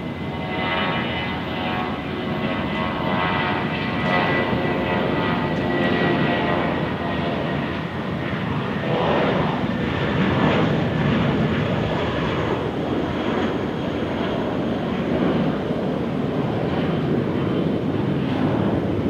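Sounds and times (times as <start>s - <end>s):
jet engines roaring at takeoff: 0.0s - 19.0s.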